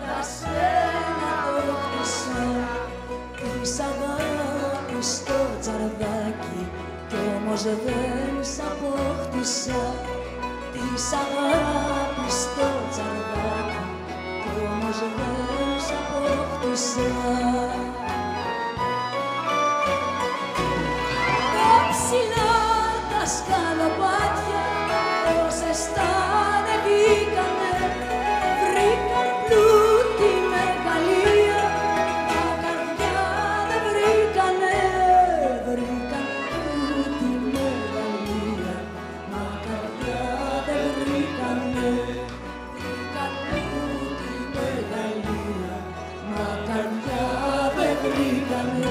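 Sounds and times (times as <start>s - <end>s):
violin melody sliding down: 0.0s - 5.2s, 5.9s - 48.9s
bass line: 0.0s - 48.9s
bowed strings: 0.0s - 48.9s.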